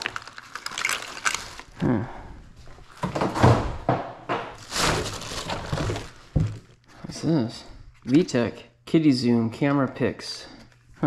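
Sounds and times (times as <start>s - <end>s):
plastic rustling and crinkling: 0.0s - 1.8s, 4.3s - 8.4s.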